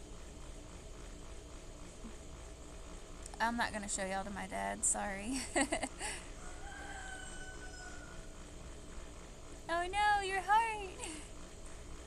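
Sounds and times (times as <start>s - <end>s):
faint high whine: 0.0s - 12.0s
pool pump humming: 0.0s - 12.0s.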